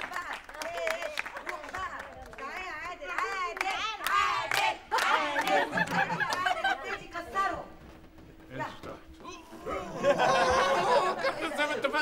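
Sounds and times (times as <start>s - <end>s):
audience clapping: 0.0s - 6.8s.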